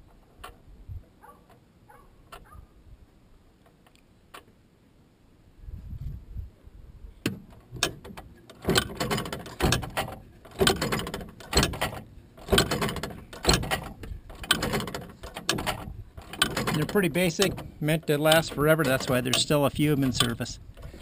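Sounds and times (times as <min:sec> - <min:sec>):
crossing signal mechanical clack: 0:07.8 - 0:20.6.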